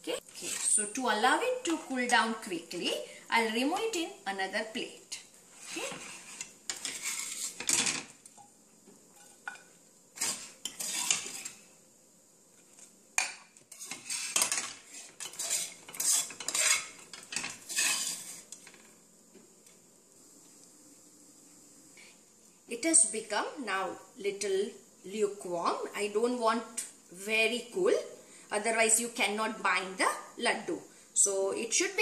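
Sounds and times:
spoon scraping frying pan: 0.2s - 1.0s, 5.6s - 7.9s, 9.1s - 11.7s, 13.2s - 18.9s.

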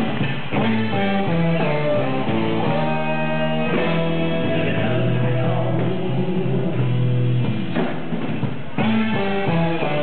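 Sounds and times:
guitar chords: 0.0s - 10.0s
rock band playing live: 0.0s - 10.0s.

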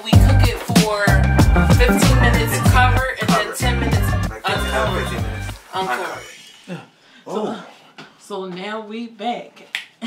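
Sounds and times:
person humming: 1.4s - 3.0s
finger snap: 9.7s - 10.0s.

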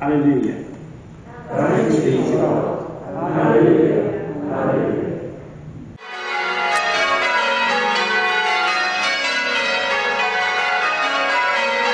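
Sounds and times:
church bells pealing: 6.0s - 11.9s.

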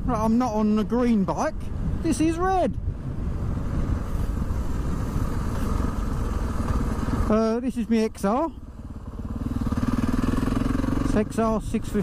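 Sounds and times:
wind rushing over microphone: 0.0s - 8.1s
motorcycle engine running: 2.9s - 12.0s.

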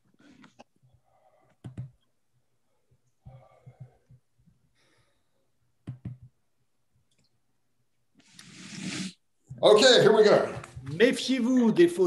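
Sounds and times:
computer mouse clicks: 1.5s - 2.0s.

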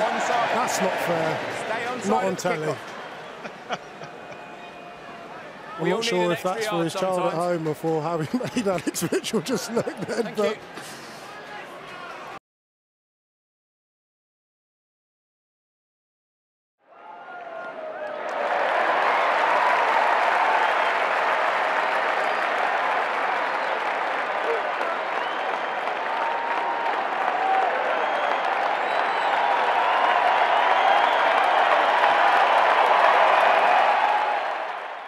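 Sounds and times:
crowd applauding and cheering: 0.0s - 12.2s, 16.9s - 35.0s.

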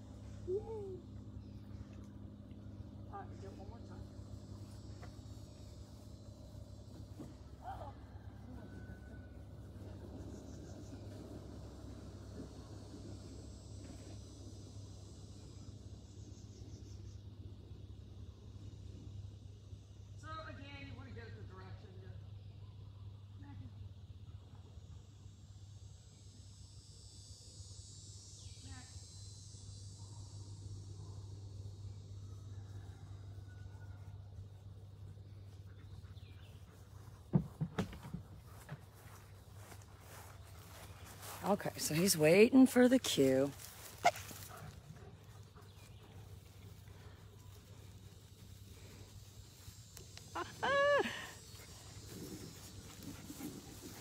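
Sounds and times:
low steady hum: 0.0s - 54.0s
high insect buzz: 24.7s - 33.2s, 38.5s - 54.0s.

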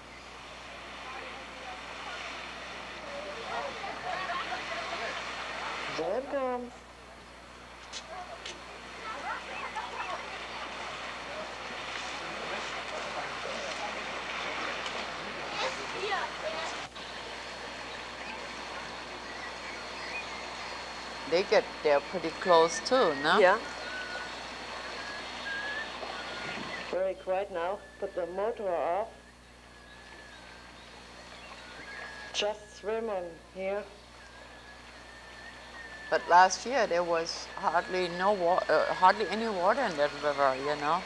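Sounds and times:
boat engine: 0.0s - 41.0s
voices calling out: 0.0s - 41.0s
rush of boat wash: 0.5s - 6.2s, 8.3s - 27.0s
thin steady high tone: 15.3s - 41.0s.

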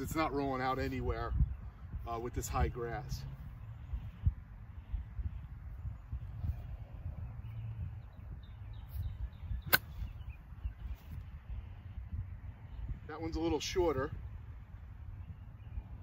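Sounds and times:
golf club striking ball: 9.6s - 10.1s.

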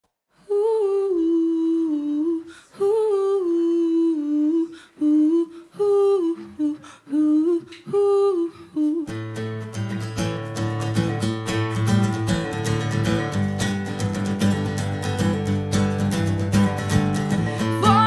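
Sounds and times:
acoustic guitar strumming: 9.1s - 18.0s.

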